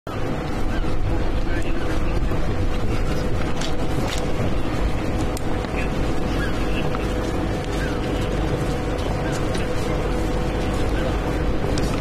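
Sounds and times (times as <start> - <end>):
indistinct crowd voices: 0.1 - 12.0
wind rumble on microphone: 0.1 - 12.0.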